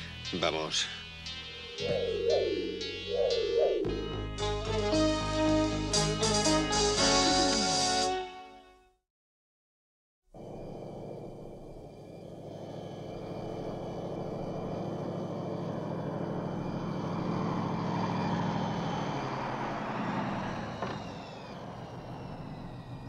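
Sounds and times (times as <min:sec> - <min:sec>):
car engine approaching and stopping: 0:01.2 - 0:07.0, 0:10.3 - 0:23.0.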